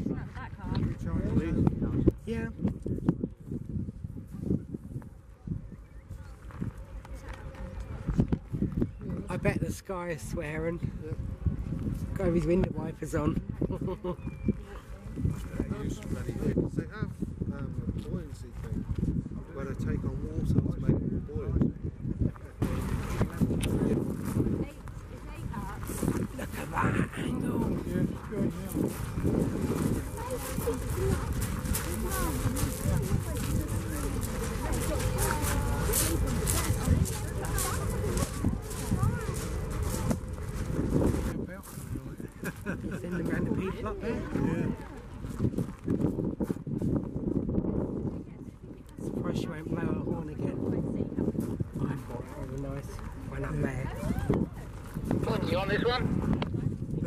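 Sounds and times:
chatter of voices: 0:00.0 - 0:57.0
low uneven rumble: 0:21.3 - 0:49.0.

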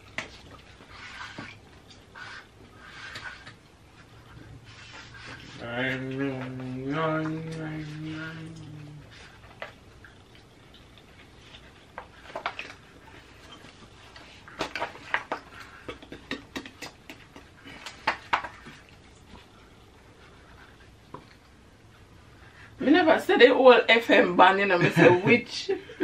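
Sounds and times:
marker scratching on paper: 0:00.9 - 0:01.5, 0:02.1 - 0:05.6.

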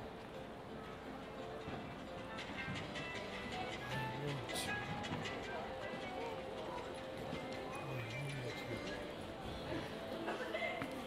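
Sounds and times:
background music: 0:00.0 - 0:11.0
people talking: 0:03.9 - 0:11.0.

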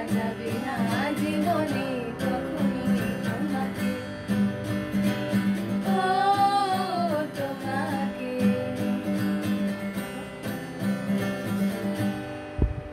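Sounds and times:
acoustic guitar strumming: 0:00.0 - 0:12.9.

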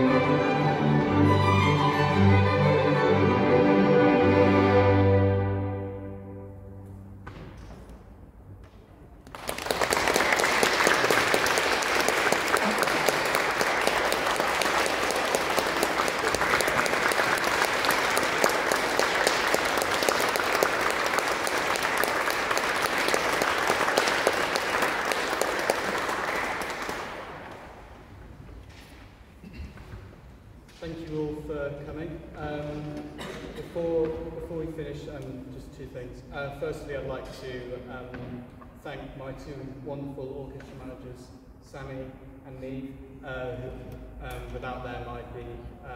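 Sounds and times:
audience applauding in a church: 0:09.2 - 0:28.2.

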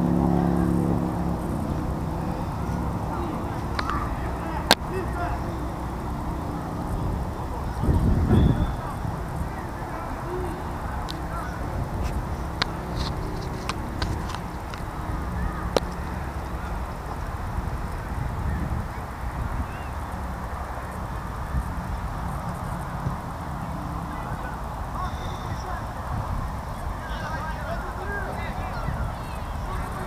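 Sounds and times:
low rumble: 0:00.0 - 0:27.5
wind buffeting microphone: 0:00.0 - 0:30.0.

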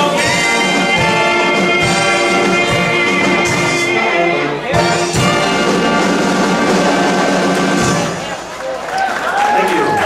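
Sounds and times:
big band swing music: 0:00.0 - 0:09.0.

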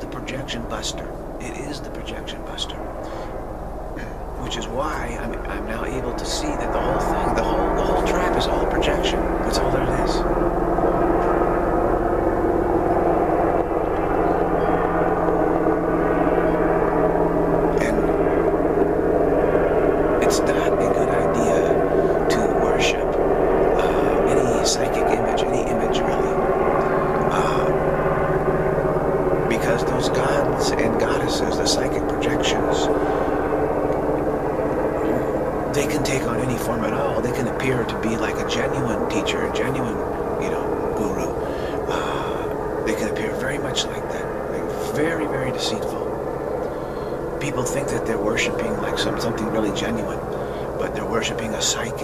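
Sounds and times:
low hum: 0:00.0 - 0:52.0
steady droning noise: 0:00.0 - 0:52.0
steady low rumbling: 0:00.0 - 0:52.0.

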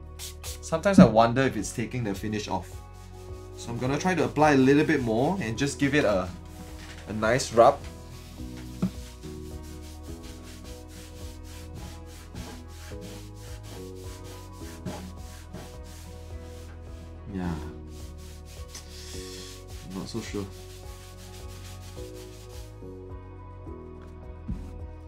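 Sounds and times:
cloth rubbing guitar top: 0:02.8 - 0:17.1, 0:17.9 - 0:22.8.

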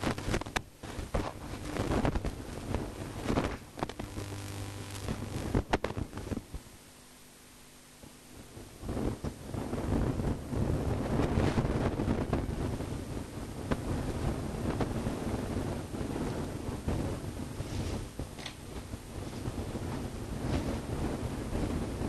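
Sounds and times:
low rumbling microphone noise: 0:00.0 - 0:22.0.

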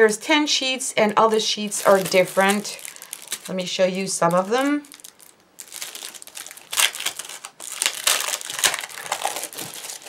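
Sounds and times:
plastic packaging crinkling: 0:01.0 - 0:10.0.

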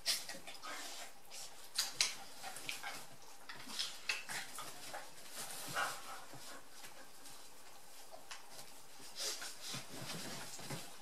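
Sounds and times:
dogs mouthing and scuffling: 0:00.0 - 0:11.0.

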